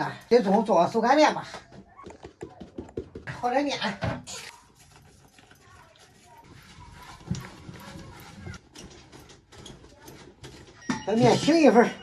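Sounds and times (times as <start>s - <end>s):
soft stirring of dough: 4.3s - 12.0s
water trickling onto flour: 4.5s - 8.7s.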